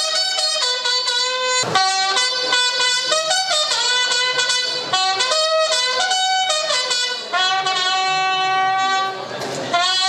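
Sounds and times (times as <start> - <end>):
bugle playing held notes: 0.0 - 10.0.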